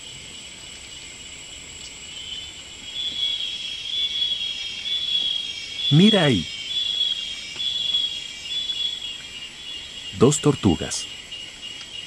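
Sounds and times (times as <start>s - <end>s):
insects chorus: 0.0s - 12.0s
pulsing insect call: 0.0s - 12.0s.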